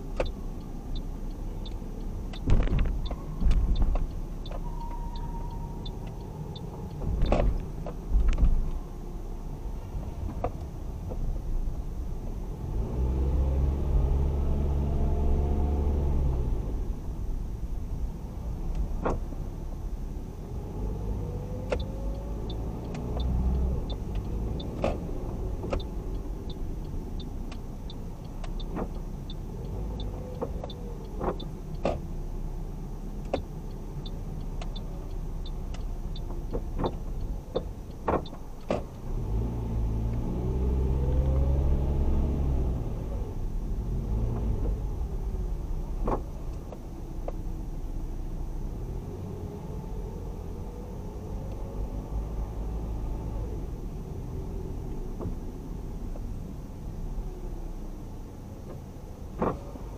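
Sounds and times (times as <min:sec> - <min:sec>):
light ticking: 0:00.0 - 0:08.8, 0:21.5 - 0:32.1, 0:33.2 - 0:39.0
car engine and tyres: 0:00.0 - 0:59.9.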